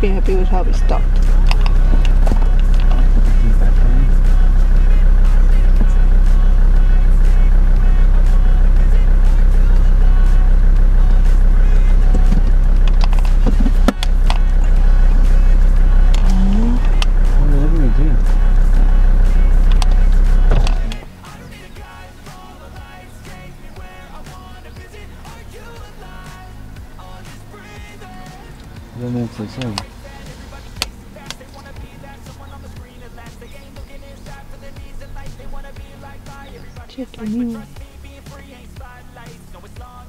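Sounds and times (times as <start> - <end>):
faint calls: 0.0 - 40.0
truck engine idling: 0.0 - 40.0.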